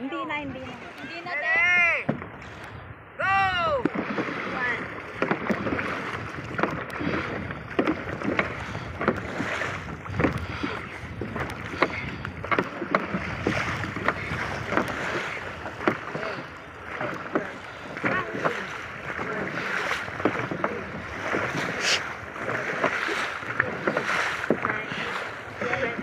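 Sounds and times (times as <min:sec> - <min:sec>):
paddles splashing in water: 0:00.0 - 0:26.0
wind and water rushing: 0:00.0 - 0:26.0.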